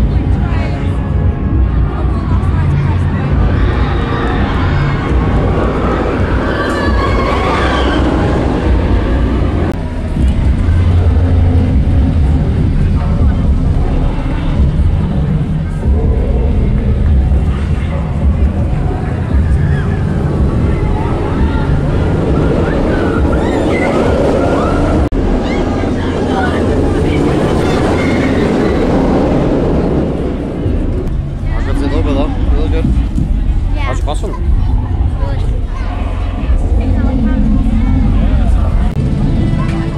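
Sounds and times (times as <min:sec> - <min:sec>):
deep steady low rumble: 0:00.0 - 0:39.9
people's voices: 0:00.0 - 0:39.9
roller coaster train rushing past: 0:00.0 - 0:39.9
riders screaming: 0:03.4 - 0:09.4, 0:19.3 - 0:25.8.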